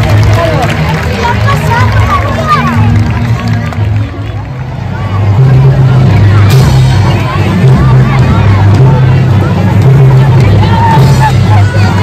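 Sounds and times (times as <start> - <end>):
children chattering: 0.0 - 12.0
music with stepping bass line: 0.0 - 12.0.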